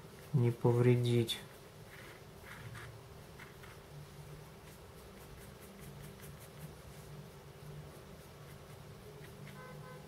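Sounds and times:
low room hum: 0.0 - 10.0
brush scratching on plastic: 1.4 - 10.0.

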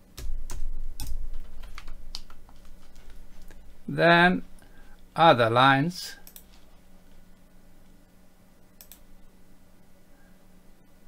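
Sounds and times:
computer keyboard keystrokes: 0.2 - 3.2, 6.2 - 6.6, 8.8 - 9.0.

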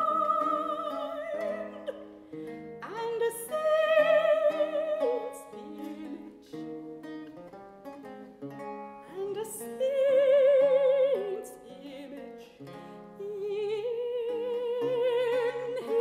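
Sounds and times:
woman singing with vibrato: 0.0 - 7.2, 9.0 - 16.0
lute playing: 0.0 - 16.0.

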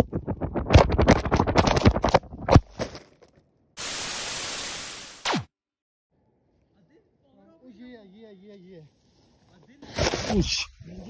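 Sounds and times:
static hiss: 3.8 - 5.3.

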